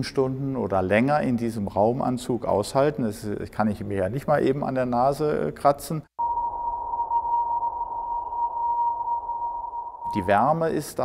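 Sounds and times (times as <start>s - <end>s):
steady high-pitched tone: 6.2s - 11.0s.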